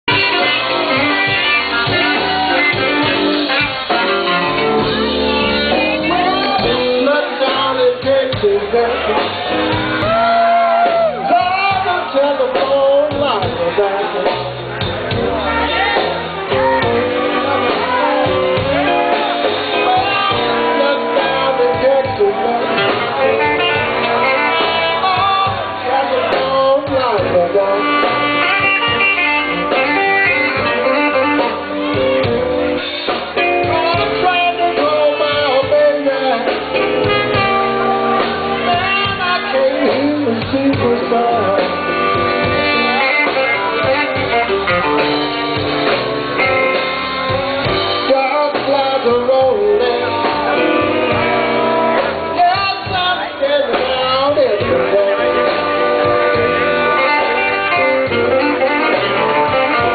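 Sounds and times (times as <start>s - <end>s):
drum kit beat: 0.0s - 59.9s
electric blues band playing: 0.0s - 59.9s
electric guitar: 0.0s - 59.9s.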